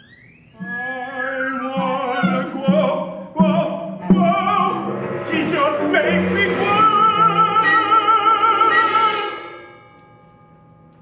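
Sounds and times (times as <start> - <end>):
man singing opera note: 0.6 - 9.5.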